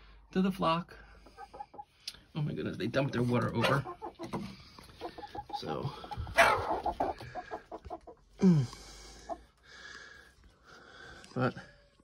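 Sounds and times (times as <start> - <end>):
young chickens clucking: 0.8 - 9.7.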